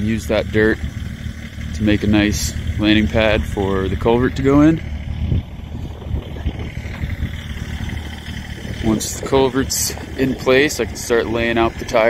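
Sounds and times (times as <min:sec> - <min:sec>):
tractor engine running: 0:00.0 - 0:12.0.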